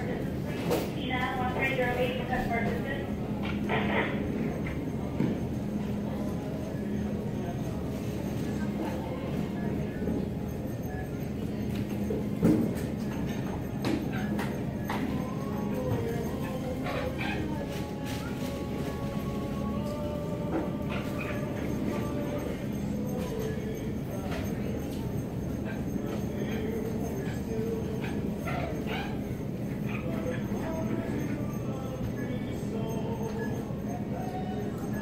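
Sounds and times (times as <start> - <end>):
busy supermarket checkout background: 0.0 - 35.0
faint background music: 0.0 - 35.0.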